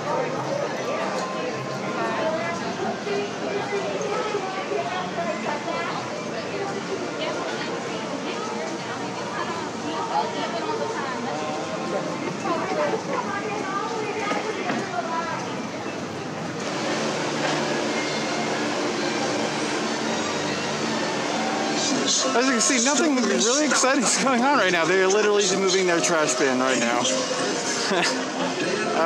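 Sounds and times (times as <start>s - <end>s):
indistinct chatter: 0.0s - 29.0s
steady background hum: 0.0s - 29.0s.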